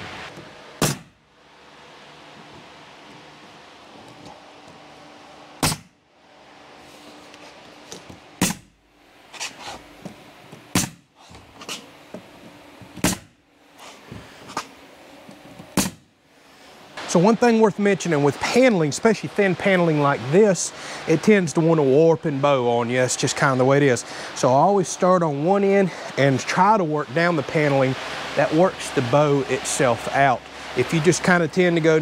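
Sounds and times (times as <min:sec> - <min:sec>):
nail gun shots into wood: 0:00.8 - 0:01.2, 0:05.6 - 0:05.9, 0:08.4 - 0:08.7, 0:10.7 - 0:11.0, 0:13.0 - 0:13.3, 0:15.8 - 0:16.0.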